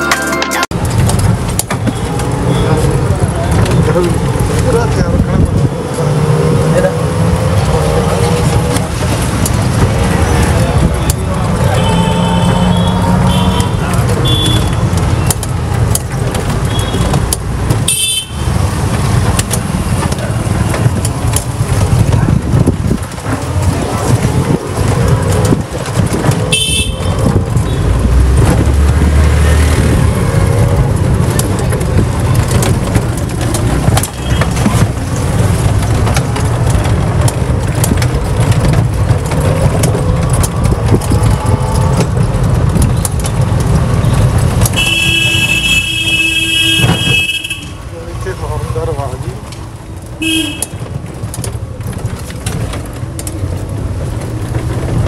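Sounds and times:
low rumble of rickshaw ride: 0.0s - 55.0s
vehicle horn: 11.7s - 14.8s, 17.9s - 18.4s, 26.5s - 27.8s, 44.8s - 47.8s, 50.2s - 50.8s.

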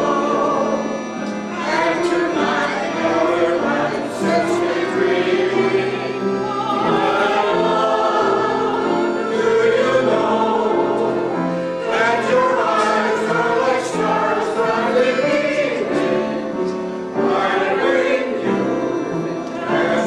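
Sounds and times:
choir singing long notes: 0.0s - 20.0s.

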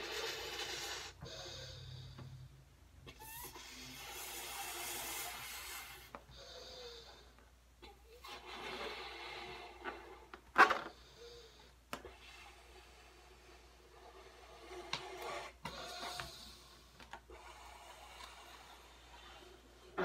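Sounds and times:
blowing into balloon: 3.1s - 6.1s, 8.2s - 11.2s, 12.1s - 16.6s.

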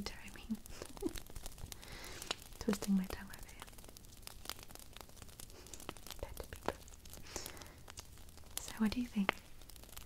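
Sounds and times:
fingers tapping and scratching: 5.6s - 6.9s.

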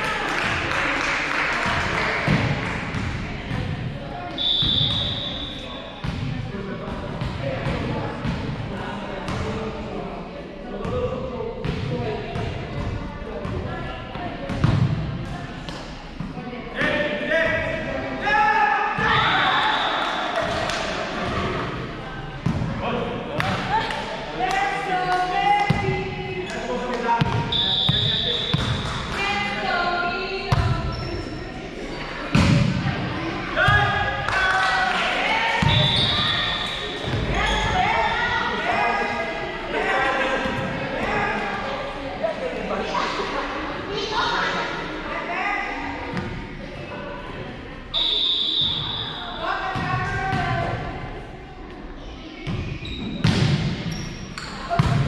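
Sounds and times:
volleyball hits: 27.2s - 29.3s.

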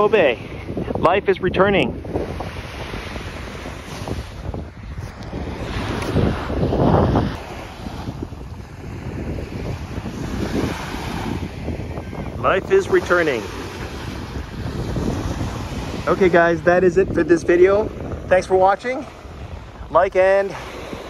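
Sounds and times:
small waves washing onto sand: 0.0s - 21.0s
wind rumbling on microphone: 0.0s - 21.0s.

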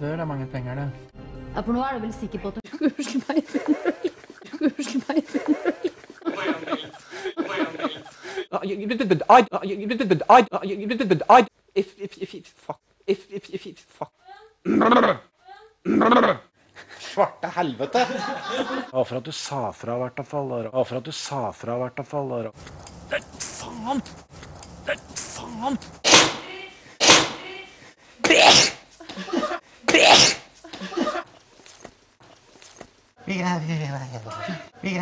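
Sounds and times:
man sneezing loudly: 14.7s - 15.2s, 15.9s - 16.4s, 28.2s - 31.2s
man's burp-like yell: 14.7s - 15.2s.

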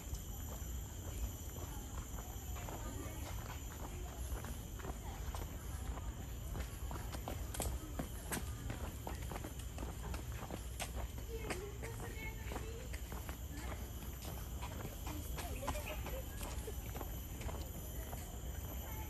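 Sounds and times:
footsteps on pavement: 0.0s - 19.0s
steady high-pitched hum: 0.0s - 19.0s.

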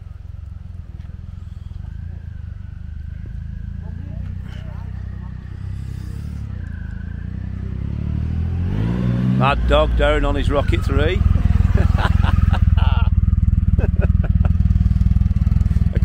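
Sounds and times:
motorcycle engine approaching: 0.0s - 16.0s.

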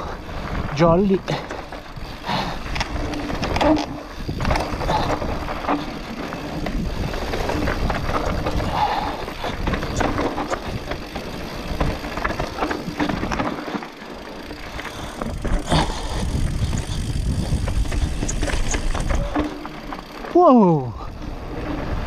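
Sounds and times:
bike clicks and rattles: 0.0s - 22.0s
tyres rumbling on dirt: 0.0s - 22.0s
wind on microphone: 1.9s - 5.8s, 15.2s - 19.6s.

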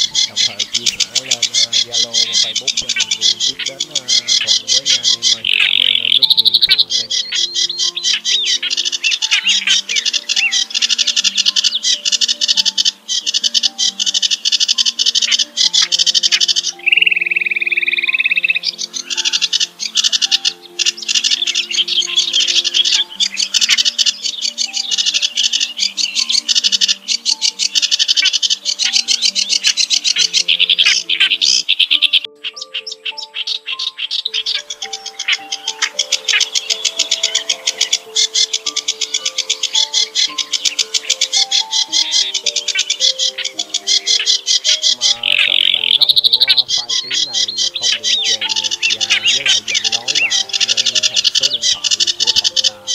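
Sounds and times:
bird clicking: 0.0s - 17.6s, 18.4s - 32.3s, 34.0s - 52.9s
low-note melody: 0.0s - 52.9s
songbirds chattering trill: 0.0s - 52.9s
bird whistled note: 13.8s - 27.0s.

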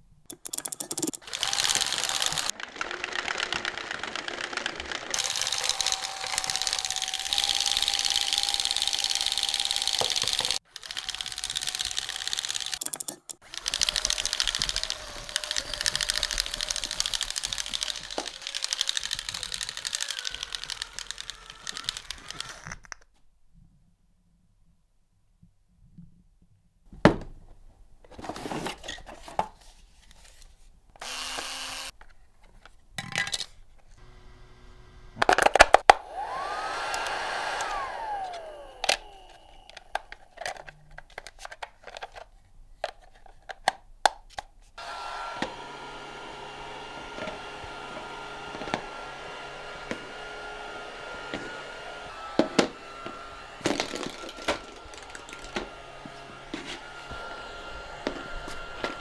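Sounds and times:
toy being handled: 0.3s - 23.2s, 28.1s - 34.0s, 35.2s - 44.8s, 52.1s - 57.3s
fan motor hum: 3.1s - 12.8s, 13.4s - 22.4s, 34.0s - 40.2s, 44.8s - 59.0s.

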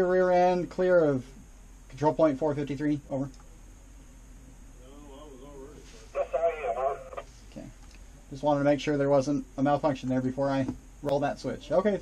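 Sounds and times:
man's voice over two-way radio: 6.1s - 7.2s.

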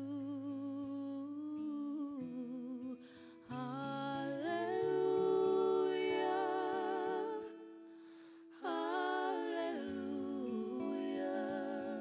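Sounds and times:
woman singing with vibrato: 0.0s - 7.7s, 8.6s - 12.0s.

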